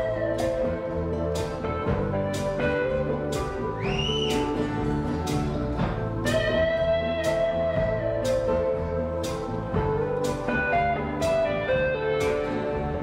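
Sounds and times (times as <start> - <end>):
bass guitar: 0.0 - 13.0
electric guitar lead: 0.0 - 13.0
drum hits: 1.4 - 12.9.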